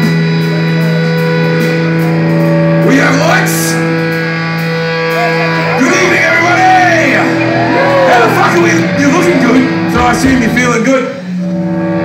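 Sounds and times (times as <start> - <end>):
electric guitar sustained note: 3.6 - 12.0.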